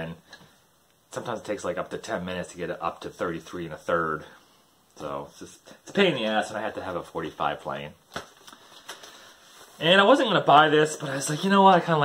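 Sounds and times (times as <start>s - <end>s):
record jackets rustling: 6.2s - 12.0s.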